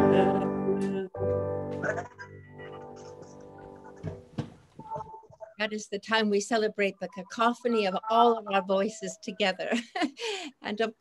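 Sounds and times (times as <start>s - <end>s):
woman speaking: 0.0s - 1.2s, 5.5s - 11.0s
knock: 4.0s - 4.6s.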